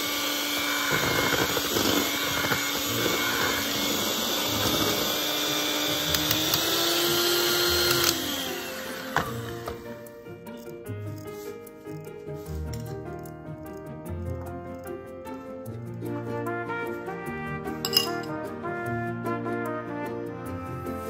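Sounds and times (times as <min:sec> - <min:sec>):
electric hand mixer humming: 0:00.0 - 0:10.1.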